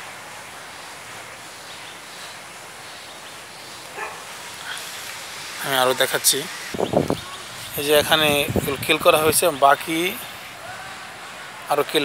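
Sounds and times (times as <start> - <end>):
steady outdoor hiss: 0.0 - 12.0.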